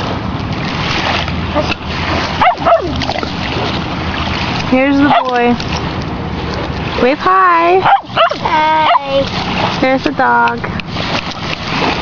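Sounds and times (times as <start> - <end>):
dog whining: 2.4 - 3.0.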